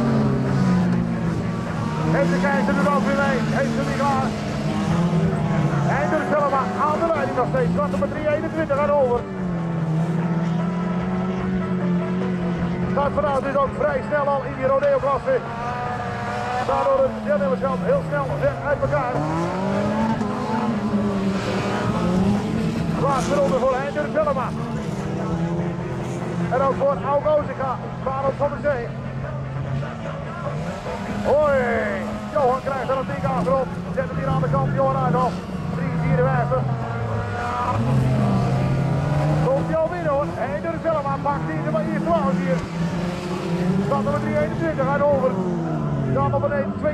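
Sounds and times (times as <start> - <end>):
car engines at high revs: 0.0 - 46.9.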